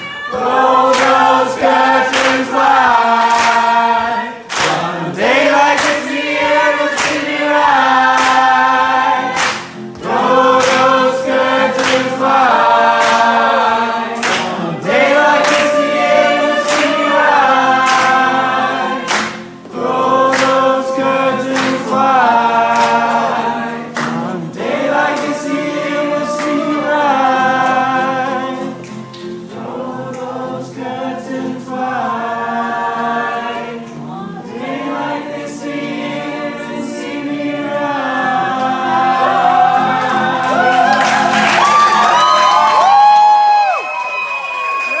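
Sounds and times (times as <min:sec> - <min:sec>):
strummed acoustic guitar: 0:00.0 - 0:41.6
two voices singing duet: 0:00.0 - 0:43.8.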